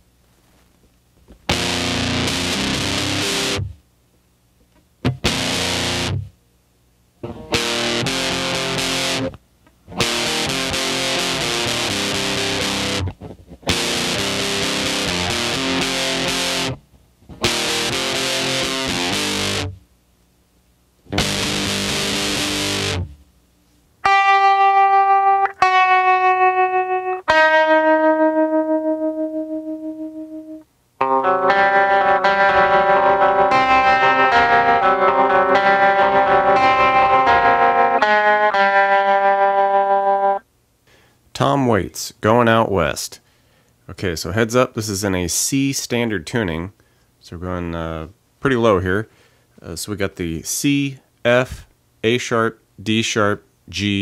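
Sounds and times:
distorted electric guitar chords: 0:01.4 - 0:03.8, 0:05.0 - 0:06.4, 0:07.2 - 0:19.8, 0:21.0 - 0:23.2, 0:24.0 - 0:40.5
tremolo guitar notes: 0:01.5 - 0:03.8, 0:05.0 - 0:06.3, 0:07.2 - 0:19.8, 0:21.1 - 0:23.2, 0:24.0 - 0:40.4.

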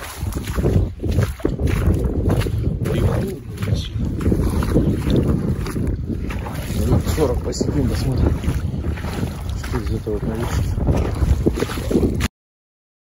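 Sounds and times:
wind buffeting microphone: 0:00.0 - 0:12.3.

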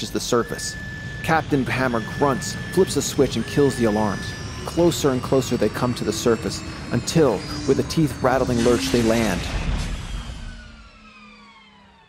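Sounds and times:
high whine gliding down: 0:00.0 - 0:12.0
low rumble: 0:00.0 - 0:12.0
steady low hum: 0:00.0 - 0:12.0.

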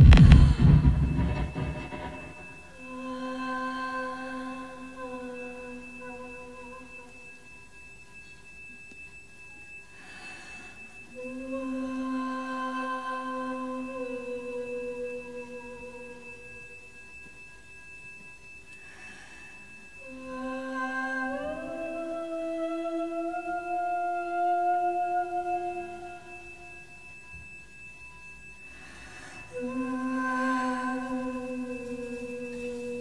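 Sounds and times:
short rush of noise: 0:00.0 - 0:02.6
faint electronic drone: 0:00.0 - 0:33.0
woman singing long held notes: 0:01.4 - 0:07.4, 0:11.1 - 0:16.5, 0:20.0 - 0:26.7, 0:29.5 - 0:33.0.

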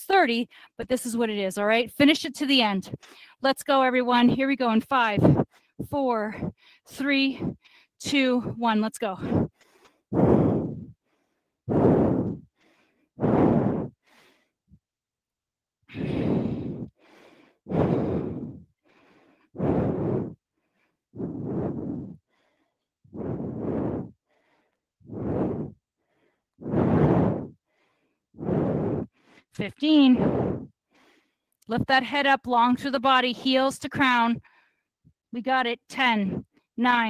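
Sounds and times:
woman breathing hard: 0:05.2 - 0:08.6, 0:09.2 - 0:14.8, 0:15.9 - 0:31.6.

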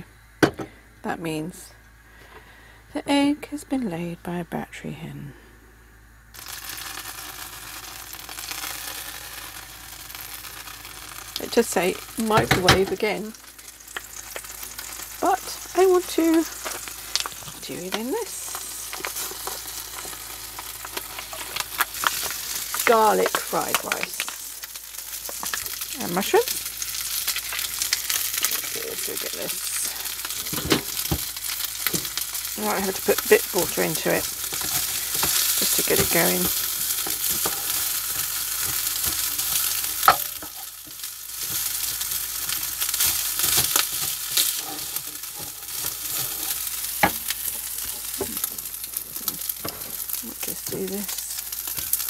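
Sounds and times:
eggs sizzling in pan: 0:06.2 - 0:52.0
small crackling pops: 0:06.3 - 0:52.0
wooden spatula scraping a pan: 0:32.9 - 0:48.6
spatula tapping a pan: 0:40.0 - 0:41.7.

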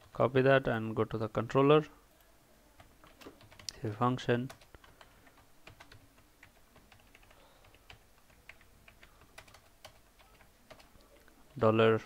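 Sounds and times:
computer keyboard typing: 0:02.8 - 0:03.8, 0:04.4 - 0:11.2.

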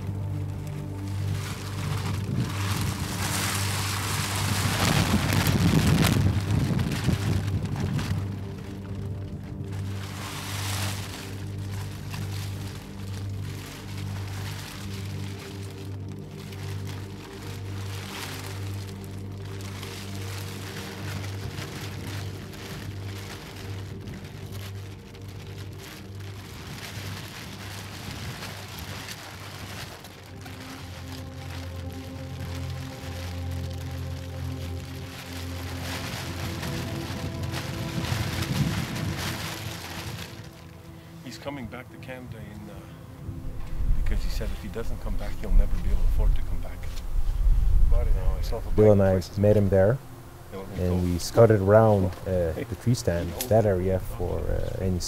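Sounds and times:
background music with pulsing bass: 0:00.0 - 0:55.0
rain-like hiss: 0:00.0 - 0:55.0.

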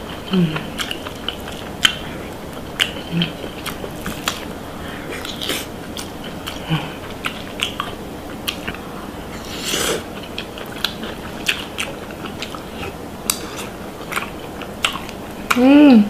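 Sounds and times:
person chewing food: 0:00.0 - 0:15.7.

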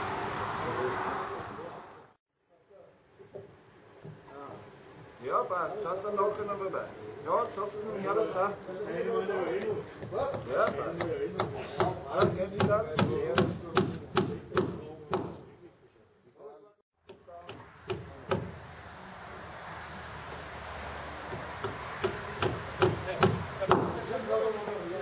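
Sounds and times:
men talking: 0:04.3 - 0:18.5, 0:22.3 - 0:25.0
hammer blows on timber: 0:09.6 - 0:15.5, 0:17.0 - 0:18.6, 0:21.2 - 0:24.1.

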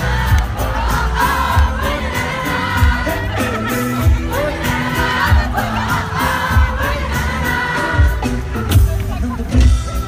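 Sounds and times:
lead singing: 0:00.0 - 0:08.8
crowd voices: 0:00.0 - 0:10.0
pop-folk band playing: 0:00.0 - 0:10.0.

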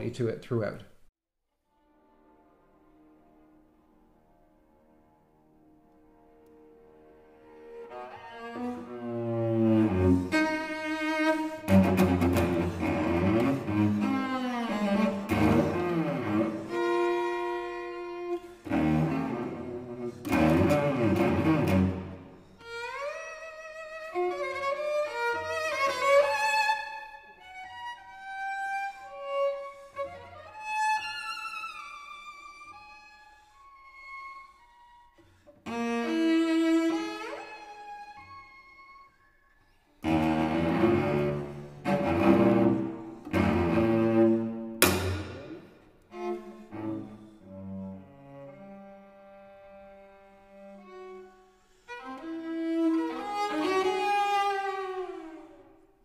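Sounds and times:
solo cello playing: 0:01.7 - 0:56.0.

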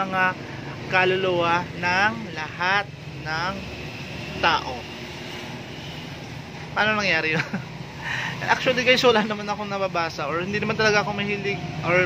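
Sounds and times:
man speaking: 0:00.0 - 0:05.0, 0:06.6 - 0:12.0.

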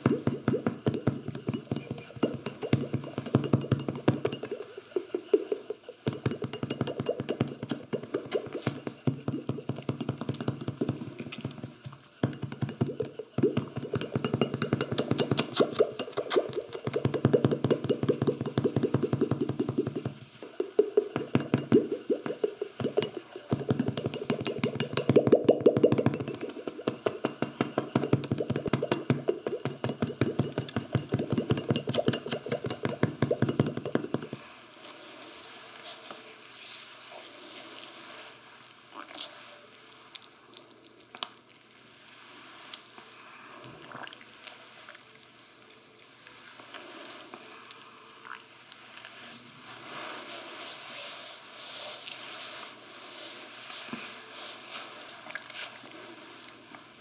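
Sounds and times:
percussive massage tapping on body: 0:00.0 - 0:34.5.

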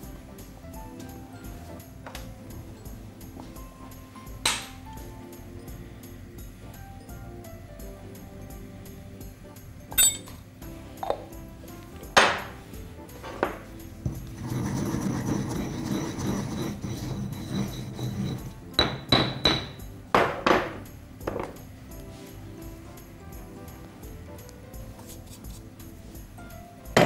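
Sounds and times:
hard strikes with ringing clink: 0:09.9 - 0:10.4
pestle knocking in a mortar: 0:12.2 - 0:12.6, 0:13.3 - 0:21.6
pestle grinding dry mix: 0:13.4 - 0:19.8.

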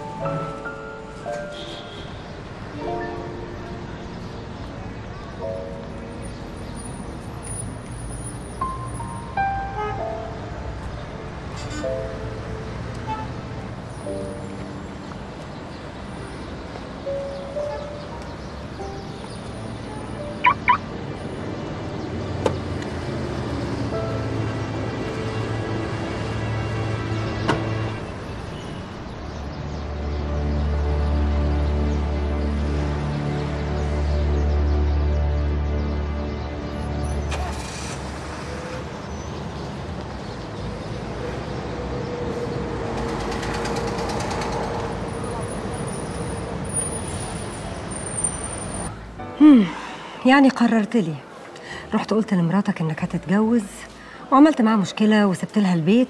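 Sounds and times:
street traffic noise: 0:00.0 - 0:56.0
car alarm chirps: 0:20.4 - 0:20.8.

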